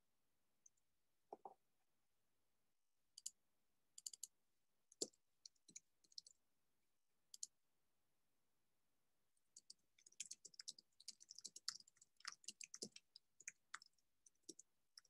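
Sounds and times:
typing on computer keys: 0:04.0 - 0:04.3, 0:05.0 - 0:06.3, 0:09.5 - 0:15.0.

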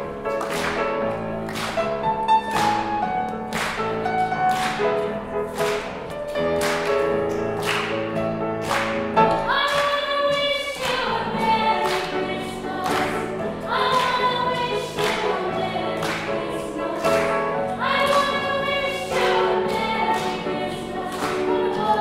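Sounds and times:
grand piano accompaniment: 0:00.0 - 0:22.0.

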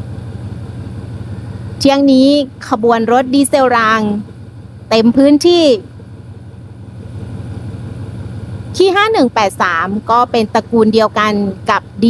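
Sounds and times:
diesel train engine idling: 0:00.0 - 0:12.0
woman speaking: 0:01.8 - 0:04.2, 0:04.9 - 0:05.9, 0:08.8 - 0:12.0.

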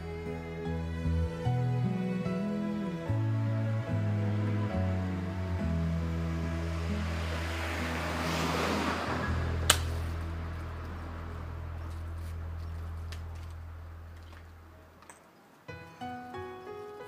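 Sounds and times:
slow background music: 0:00.0 - 0:13.9, 0:15.7 - 0:17.0
golf ball struck click: 0:09.7 - 0:10.0.

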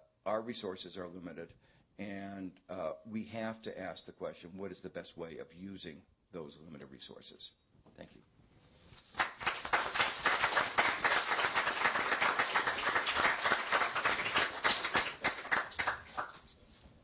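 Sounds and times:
audience applauding: 0:09.1 - 0:16.6.

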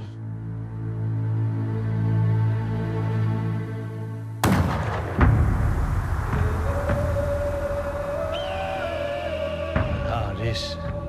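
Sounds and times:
gunshots with echoing tail: 0:04.4 - 0:06.6.

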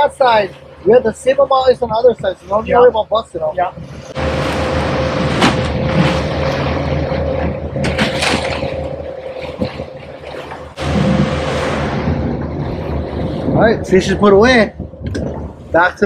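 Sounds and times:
outboard motors droning: 0:00.0 - 0:16.0
wind and water rushing: 0:00.0 - 0:16.0.

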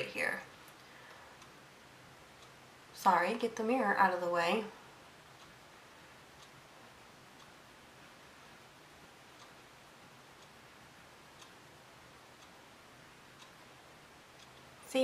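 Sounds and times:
faint clock ticking: 0:00.0 - 0:15.0.

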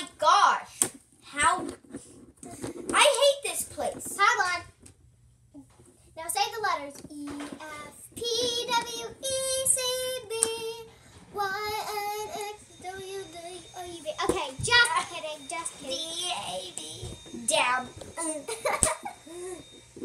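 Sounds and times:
girl singing wordless tune: 0:06.2 - 0:18.5.

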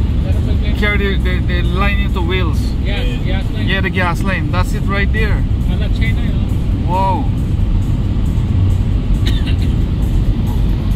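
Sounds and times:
vehicle engine and road noise: 0:00.0 - 0:10.9.

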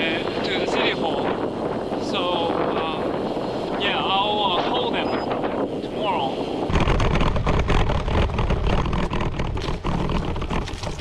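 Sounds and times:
wind buffeting microphone: 0:00.0 - 0:11.0
bike rattling over bumpy ground: 0:06.6 - 0:11.0.

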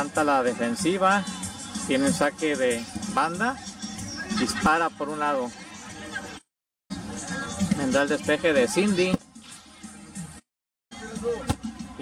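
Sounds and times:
faint background music: 0:00.0 - 0:12.0
football kick thud: 0:11.4 - 0:11.8.

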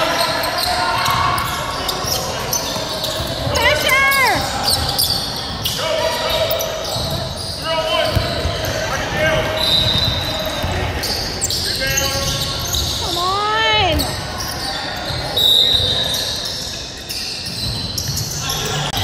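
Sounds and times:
players shouting: 0:00.0 - 0:04.9
sneakers squeaking: 0:00.0 - 0:19.0.

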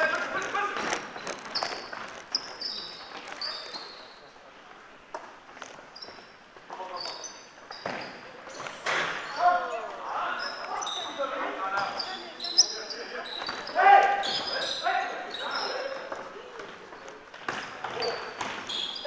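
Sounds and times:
sneakers squeaking: 0:00.0 - 0:19.0.

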